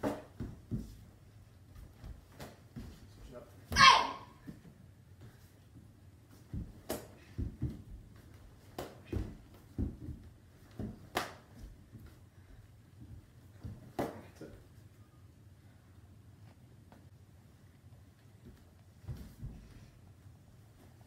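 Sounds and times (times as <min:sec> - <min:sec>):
bare feet thudding on wooden floor: 0:00.0 - 0:03.2, 0:03.8 - 0:14.3.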